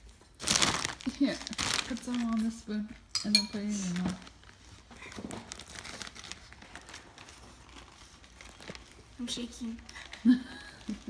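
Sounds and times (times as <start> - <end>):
plastic bag crinkling: 0.0 - 3.0, 3.6 - 11.0.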